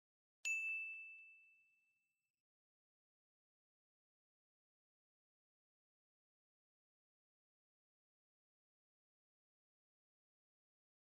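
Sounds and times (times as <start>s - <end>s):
notification bell ding: 0.5s - 1.9s.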